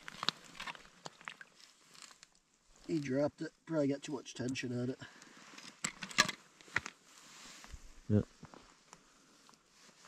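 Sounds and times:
fishing line clicks and rustles: 0.0 - 3.1.

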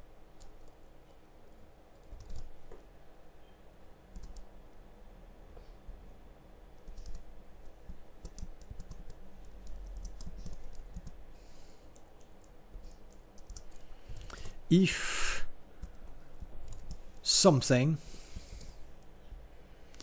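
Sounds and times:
computer keyboard typing: 1.9 - 2.6, 4.1 - 4.5, 6.8 - 11.2, 11.9 - 14.6, 15.8 - 17.3.

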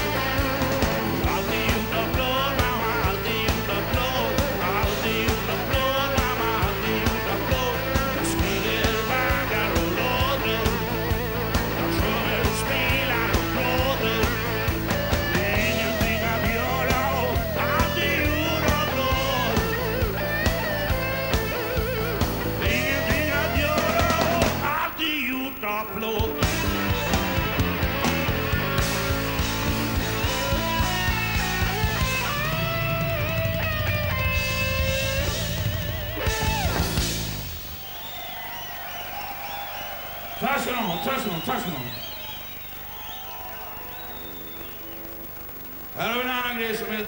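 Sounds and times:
man singing: 0.0 - 20.3, 22.5 - 27.4, 46.0 - 47.0
drums and cymbals: 0.0 - 24.8, 26.2 - 40.7
electric guitar: 0.0 - 47.0.

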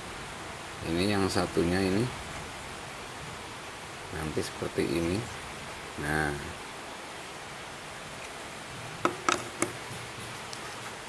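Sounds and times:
steady background hiss: 0.0 - 11.0
small hard parts clicking: 9.1 - 10.6.

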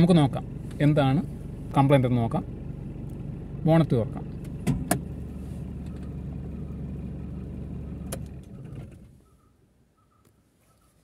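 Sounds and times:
car engine idling: 0.0 - 10.1.

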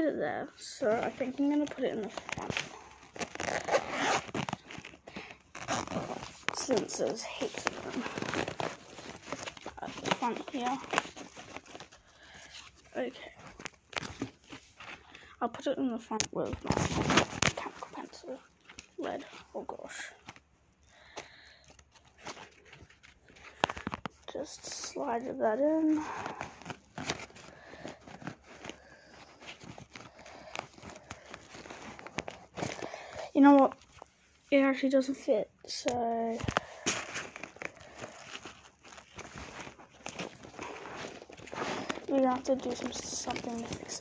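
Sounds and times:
stationery rustling: 0.0 - 44.0.

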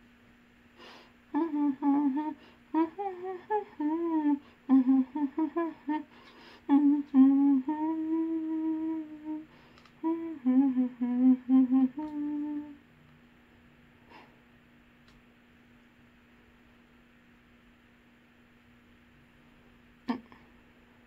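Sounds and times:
woman humming a tune: 1.3 - 12.8, 20.0 - 20.6
woman laughing: 20.1 - 20.5.

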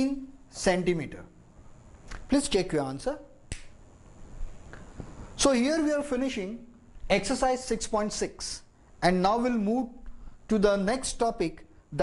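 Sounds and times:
marker cap snapping on: 3.5 - 3.8.

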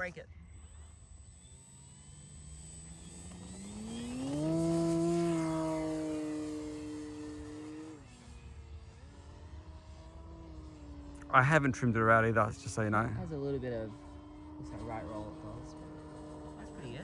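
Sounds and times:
electric motor and propeller whine: 0.0 - 17.0.

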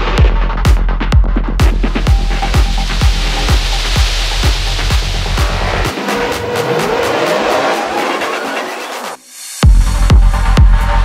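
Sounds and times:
electronic dance track: 0.0 - 11.0
hi-hats ticking: 0.5 - 6.8
rising synth sweep: 2.1 - 9.2.

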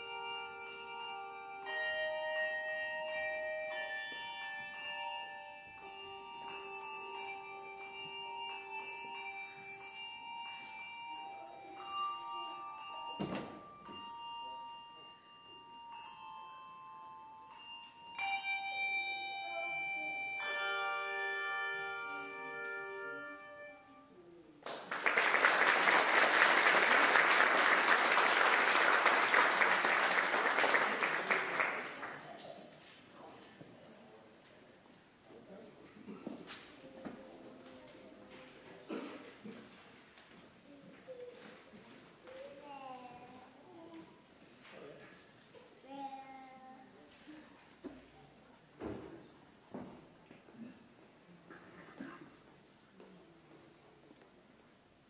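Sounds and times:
handbell choir playing: 0.0 - 24.2, 25.0 - 32.1
audience applause: 24.7 - 32.3.

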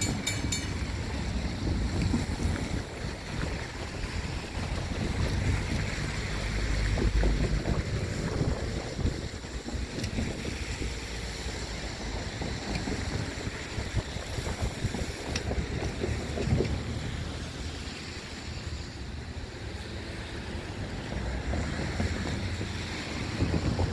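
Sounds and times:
freight train rolling on track: 0.0 - 23.9
gusty wind on microphone: 0.0 - 23.9.

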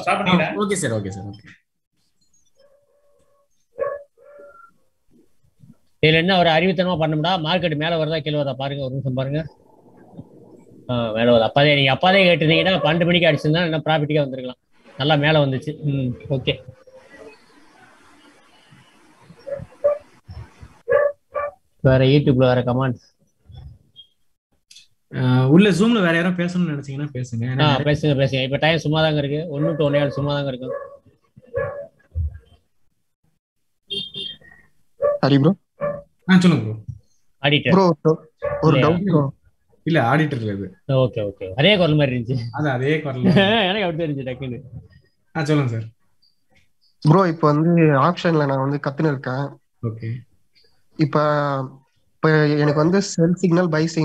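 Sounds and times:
man talking over video call: 0.0 - 1.6, 6.0 - 9.6, 10.9 - 16.8, 21.8 - 23.1, 24.7 - 30.8, 35.2 - 35.6, 36.2 - 46.0, 47.0 - 50.3, 50.9 - 54.0.

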